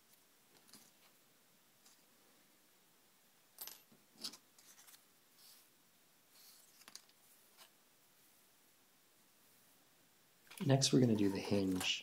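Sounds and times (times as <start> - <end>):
paper and string handling: 4.2 - 5.7, 6.3 - 7.8, 10.5 - 12.0.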